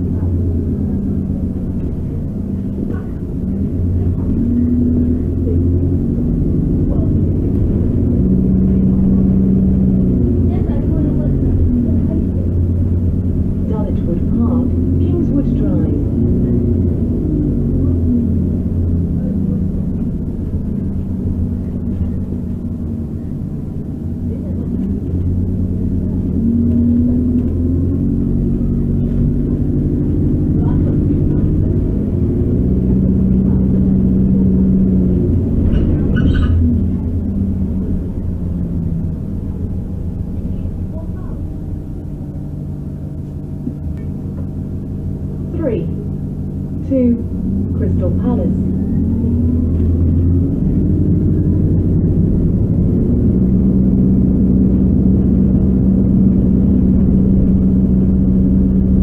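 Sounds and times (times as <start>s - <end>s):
bus engine running: 0.0s - 59.0s
road rumble: 0.0s - 59.0s.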